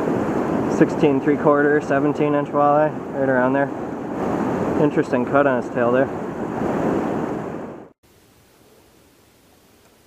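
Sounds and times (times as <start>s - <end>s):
rushing river current: 0.0s - 7.8s
wind buffeting microphone: 0.0s - 7.9s
faint steady hiss: 8.0s - 10.0s.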